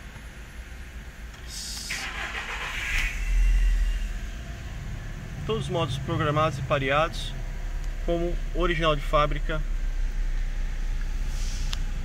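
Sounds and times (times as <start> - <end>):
car engine starting and revving: 1.8 - 12.0.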